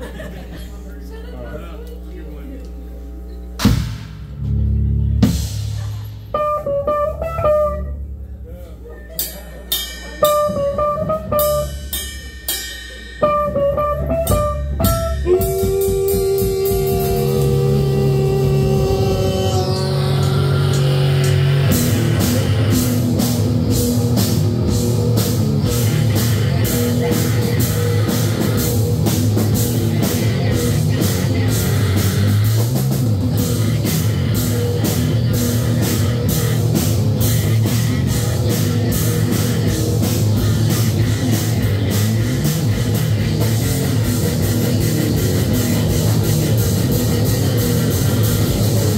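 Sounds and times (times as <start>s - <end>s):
distorted guitar notes ringing: 2.8s - 48.9s
band playing loud distorted music: 3.5s - 48.9s
fast dense drumming: 5.2s - 6.3s, 14.1s - 48.9s.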